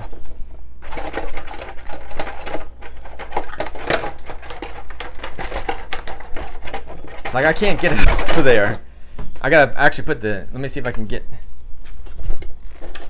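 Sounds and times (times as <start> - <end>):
plastic shell clicking and rattling: 0.8 - 8.8.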